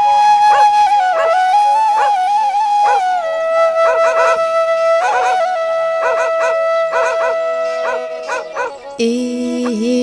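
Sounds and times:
bamboo flute long note: 0:00.0 - 0:08.6.

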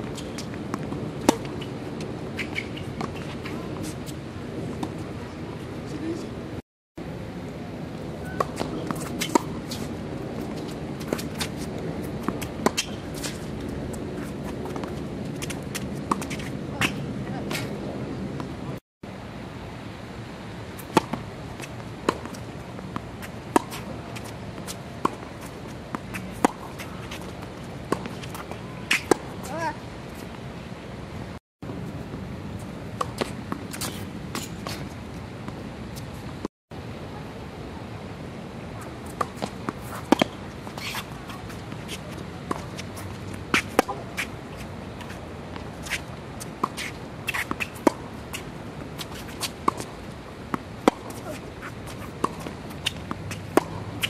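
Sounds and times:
tennis ball bouncing on court: 0:00.0 - 0:04.2, 0:08.2 - 0:17.8, 0:20.8 - 0:29.8, 0:39.0 - 0:54.0
tennis ball hitting racket: 0:00.0 - 0:04.2, 0:08.2 - 0:17.8, 0:20.8 - 0:29.8, 0:38.8 - 0:54.0
shoes scuffing on hard court: 0:39.0 - 0:50.2, 0:50.8 - 0:54.0
tennis racquet hitting ball: 0:39.1 - 0:44.3, 0:45.0 - 0:54.0.

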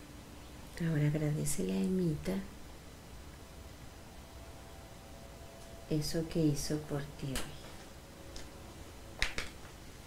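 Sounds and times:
low room hum: 0:00.0 - 0:10.0.

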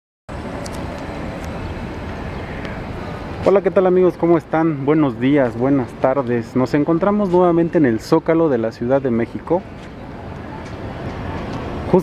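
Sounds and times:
distant traffic: 0:00.3 - 0:12.0.

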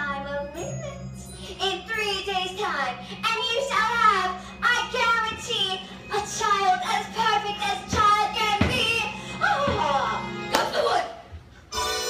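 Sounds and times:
child singing: 0:01.6 - 0:10.1.

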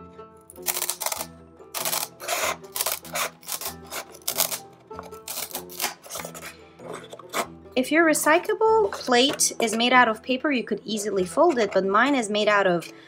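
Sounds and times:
background music: 0:00.0 - 0:13.0
scissors snipping wood: 0:00.6 - 0:07.5.

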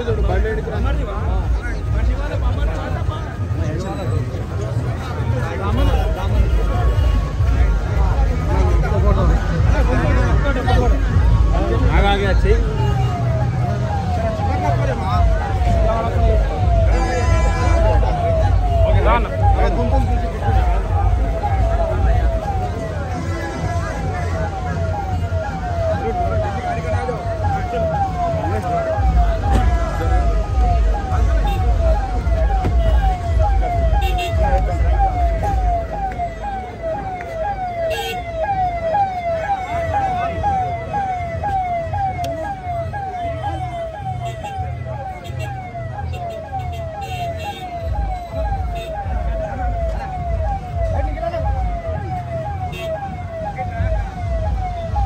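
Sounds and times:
crowd chatter: 0:00.0 - 0:55.0
siren yelping: 0:00.0 - 0:55.0.

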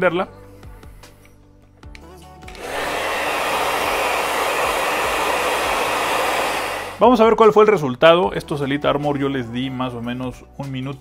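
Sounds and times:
hair dryer blowing: 0:02.5 - 0:07.1.

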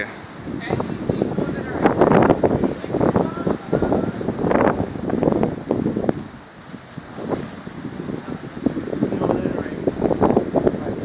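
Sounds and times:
people talking indistinctly: 0:00.0 - 0:04.4, 0:08.1 - 0:11.0
wind buffeting microphone: 0:00.0 - 0:11.0.

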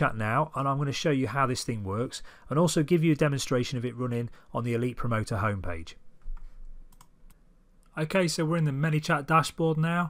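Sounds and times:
sharp computer clicks: 0:06.2 - 0:07.4.

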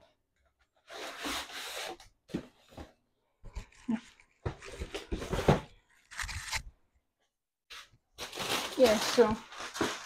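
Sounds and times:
packaging rubbing and scraping: 0:08.2 - 0:10.0.

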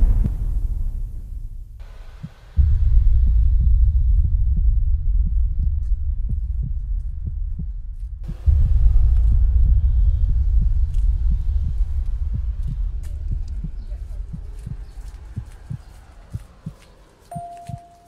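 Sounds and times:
heartbeat-like thuds: 0:00.0 - 0:17.0
deep rumbling drone: 0:00.0 - 0:17.3.

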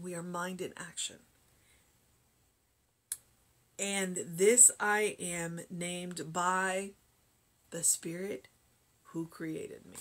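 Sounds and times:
woman speaking: 0:00.0 - 0:01.3, 0:03.8 - 0:07.0, 0:07.7 - 0:10.0.

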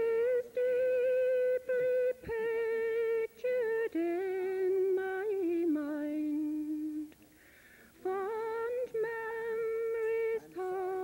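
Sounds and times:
woman singing: 0:00.0 - 0:07.2, 0:08.0 - 0:11.0.

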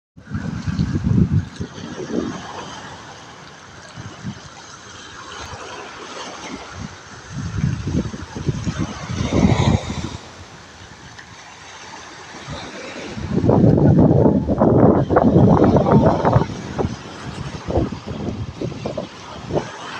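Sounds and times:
wind buffeting microphone: 0:00.2 - 0:04.6, 0:06.5 - 0:11.2, 0:12.3 - 0:19.9
waves washing on rocky shore: 0:00.2 - 0:19.9.

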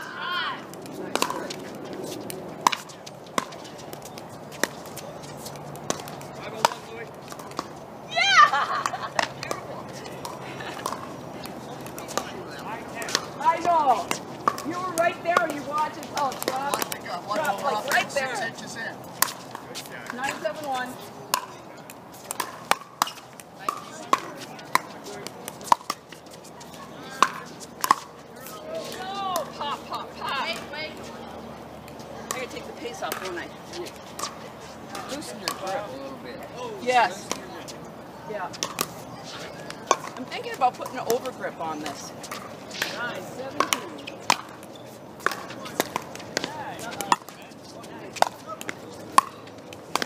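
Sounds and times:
players' voices: 0:00.0 - 0:50.0.

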